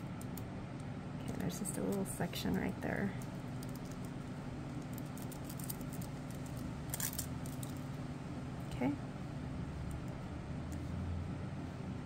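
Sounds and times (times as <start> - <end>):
low room hum: 0.0 - 12.0.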